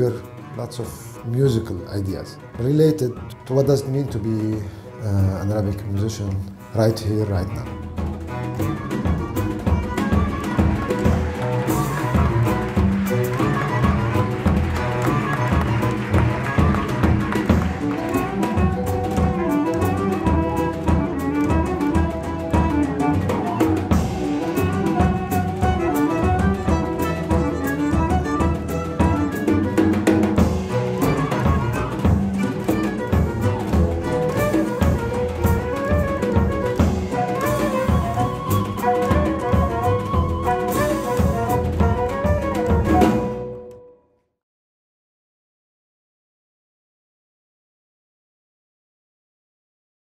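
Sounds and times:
drums and percussion: 0:00.0 - 0:43.6
bowed strings melody: 0:00.0 - 0:43.7.

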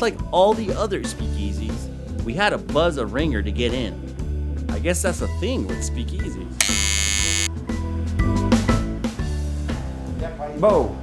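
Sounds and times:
electric door buzzer: 0:06.6 - 0:07.6.

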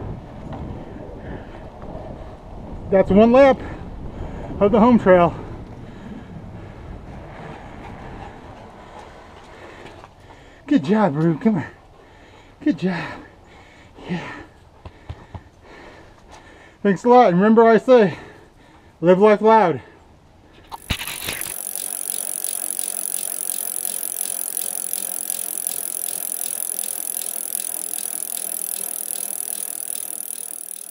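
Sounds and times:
bicycle freewheel spinning: 0:20.7 - 0:30.9.

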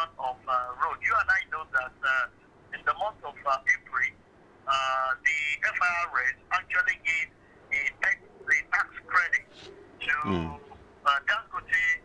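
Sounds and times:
man speaking haltingly: 0:09.4 - 0:10.8.

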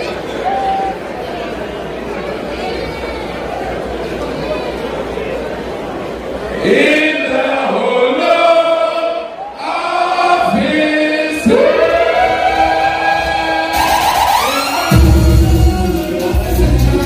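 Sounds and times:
unaccompanied singing voices: 0:06.6 - 0:17.0.

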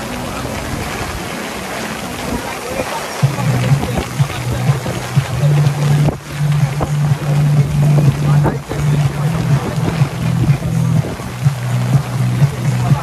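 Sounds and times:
heavy rain and wind on deck: 0:00.0 - 0:13.0
steady low hum: 0:03.2 - 0:13.0.

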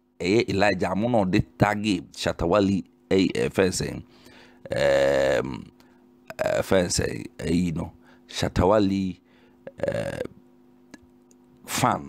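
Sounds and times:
faint electrical hum: 0:00.0 - 0:12.0
man speaking: 0:00.2 - 0:04.0, 0:04.7 - 0:05.7, 0:06.3 - 0:10.3, 0:11.6 - 0:12.0
throaty vocal sound: 0:04.6 - 0:05.4, 0:09.7 - 0:10.4.

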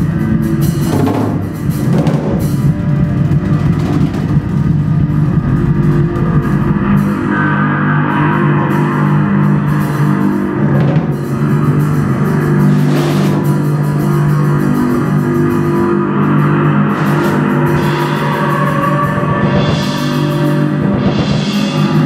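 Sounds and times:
busy drumming with cymbals: 0:00.0 - 0:07.3, 0:09.4 - 0:22.0
low bass tones: 0:00.0 - 0:22.0.

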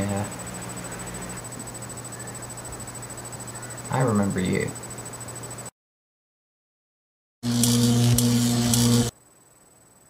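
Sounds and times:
electric buzzing hum: 0:00.0 - 0:05.7, 0:07.4 - 0:10.0
hissing crackle: 0:07.5 - 0:09.1.

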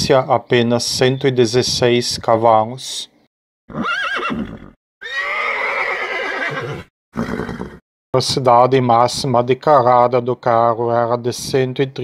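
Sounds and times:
horse neighing: 0:03.7 - 0:07.8.

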